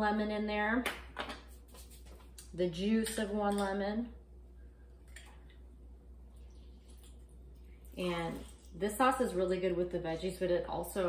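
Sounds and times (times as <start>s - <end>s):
juice dripping into a bowl: 4.8s - 8.8s.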